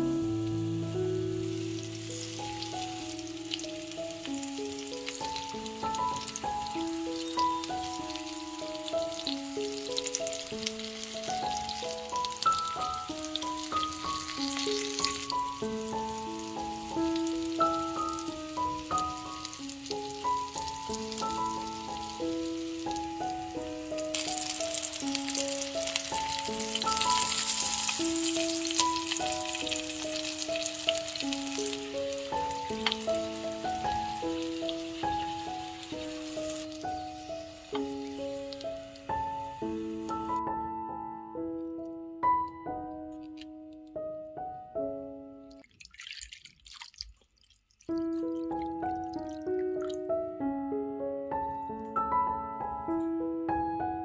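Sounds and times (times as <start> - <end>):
potato slices sizzling in oil: 0.0 - 40.4
background music simple melody: 0.0 - 45.7, 47.9 - 54.0.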